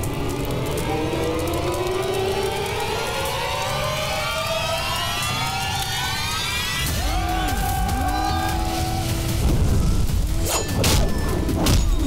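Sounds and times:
rising sweep of tones: 0.1s - 10.7s.

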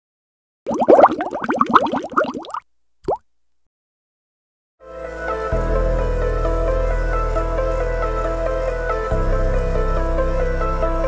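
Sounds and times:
cartoon bubbling plops: 0.7s - 3.2s.

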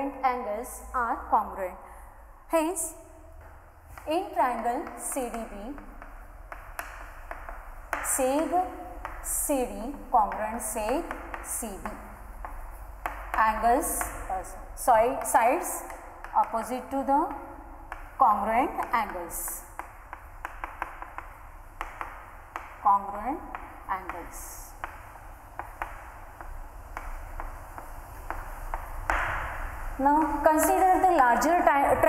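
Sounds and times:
chalk tapping and scratching board: 2.6s - 32.0s.

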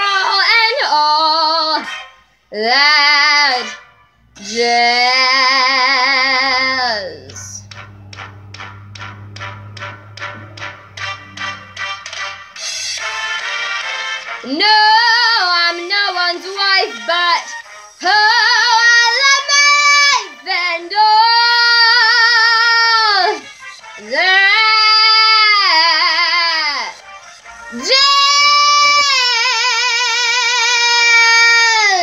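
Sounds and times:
girl singing unaccompanied: 0.0s - 1.9s, 4.4s - 7.7s, 14.4s - 23.4s, 27.7s - 32.0s.

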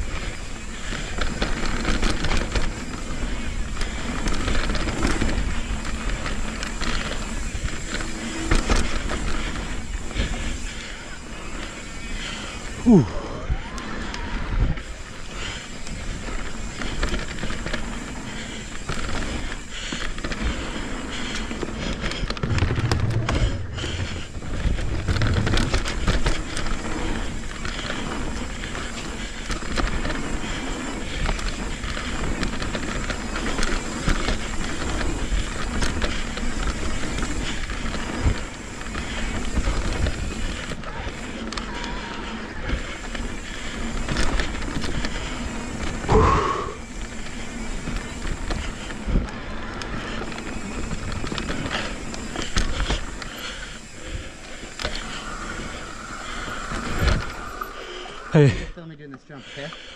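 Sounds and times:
bike rattling and knocking: 0.0s - 59.9s
tyres on packed dirt: 0.0s - 59.9s.

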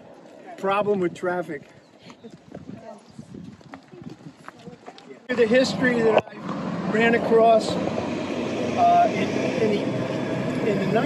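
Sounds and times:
footsteps on asphalt: 0.0s - 5.4s.

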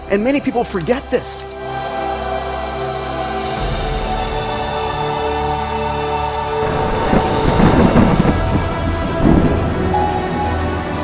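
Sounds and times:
held notes of trailer music: 0.0s - 11.0s
deep thunder-like rumble: 6.6s - 11.0s.

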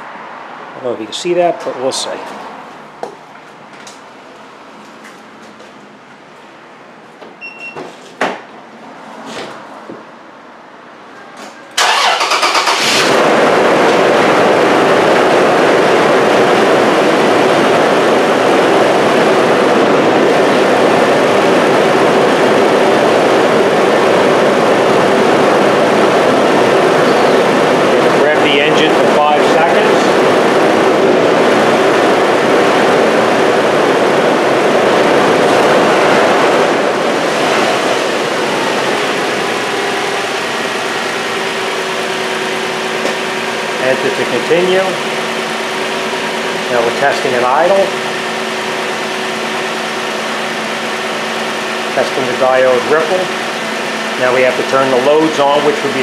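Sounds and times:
car engine starting and idling: 11.7s - 54.2s.

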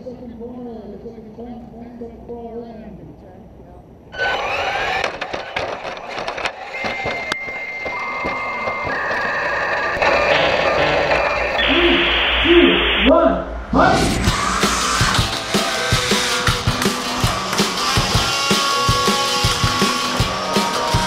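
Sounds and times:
stepping electronic tones: 6.6s - 13.2s
burst of static: 9.8s - 17.1s.

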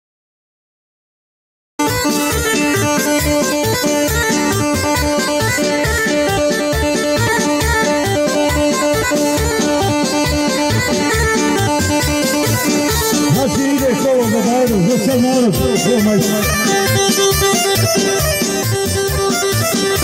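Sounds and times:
instrumental folk dance music: 1.8s - 20.0s.

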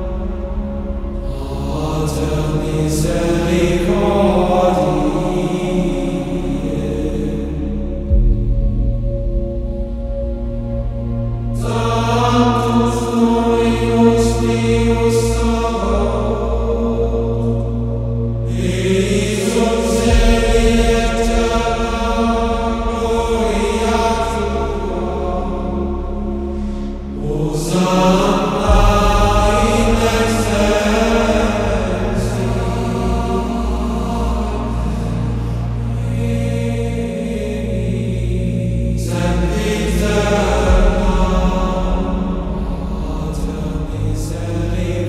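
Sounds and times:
slow chanted singing: 0.0s - 45.0s
steady low drone: 0.0s - 45.0s.

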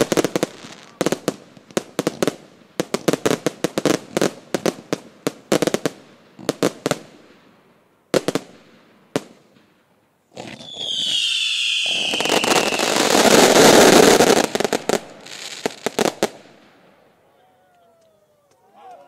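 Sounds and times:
fireworks bangs and crackles: 0.0s - 16.9s.

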